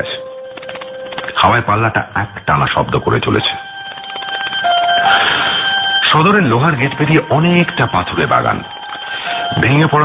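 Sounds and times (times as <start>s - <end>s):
bell ringing rapidly: 2.4s - 10.0s.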